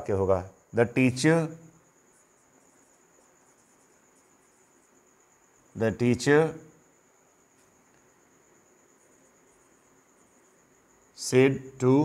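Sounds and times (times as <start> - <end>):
man speaking: 0.0 - 1.6, 5.8 - 6.7, 11.2 - 12.0
marker strokes on whiteboard: 1.9 - 5.2, 8.9 - 10.6.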